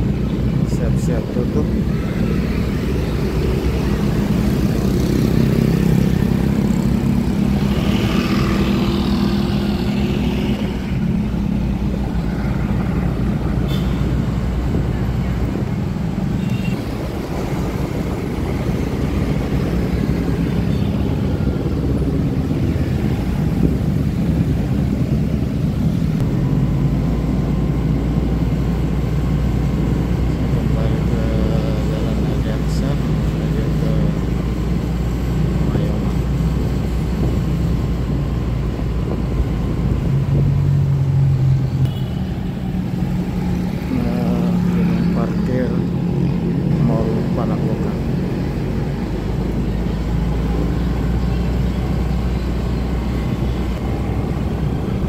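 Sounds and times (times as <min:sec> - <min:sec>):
cars passing: 0:00.0 - 0:55.0
motorbikes passing: 0:00.0 - 0:55.0
vehicle engine and road noise: 0:00.0 - 0:55.0.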